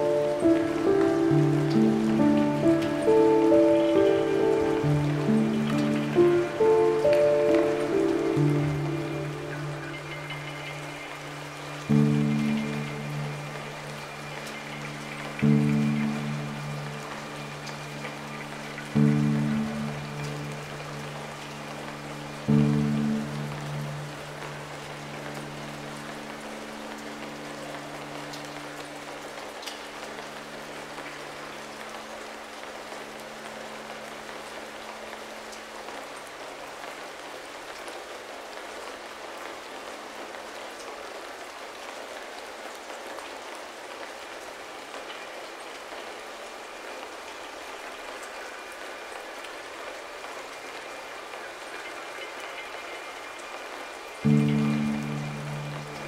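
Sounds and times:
low piano chord: 0.0s - 29.0s, 54.2s - 56.0s
steady rain: 0.0s - 56.0s.

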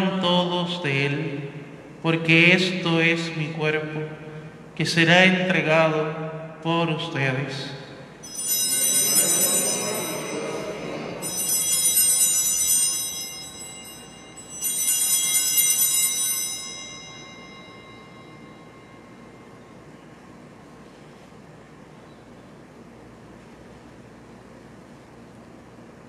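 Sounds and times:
altar bells ringing: 7.9s - 20.5s.

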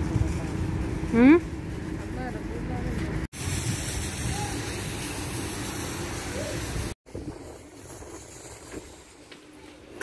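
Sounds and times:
rushing outdoor noise: 0.0s - 10.0s.

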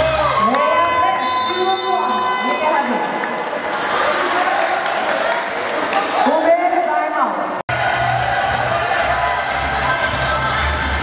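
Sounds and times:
crowd cheering: 0.0s - 6.6s, 7.7s - 11.0s.

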